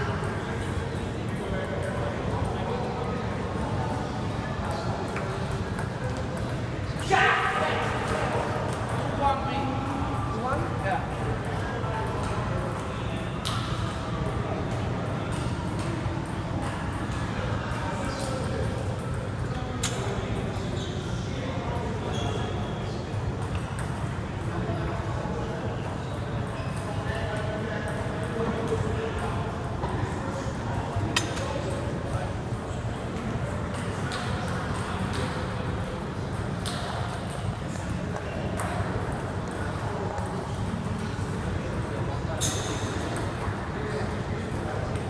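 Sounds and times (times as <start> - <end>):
ping-pong balls hitting paddles: 0.0 - 45.0.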